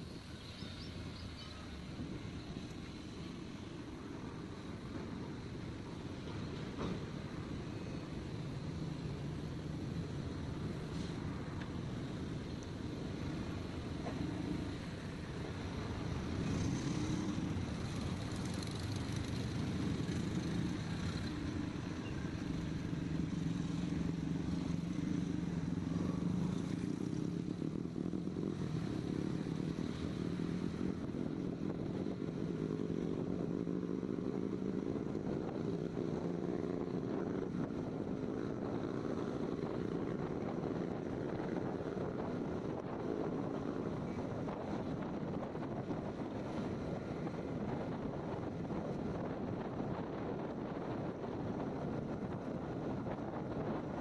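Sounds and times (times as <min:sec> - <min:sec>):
road and wind noise: 0:00.0 - 0:54.0.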